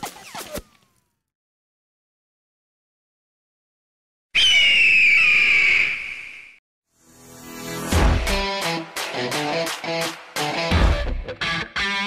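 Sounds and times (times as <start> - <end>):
bird of prey screeching: 4.4 - 6.5.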